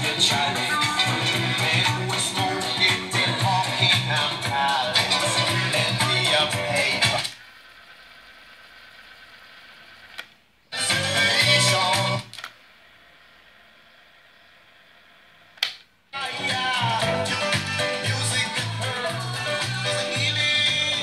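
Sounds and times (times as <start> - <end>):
car radio playing music: 0.0 - 7.4, 10.7 - 12.3, 16.2 - 21.0.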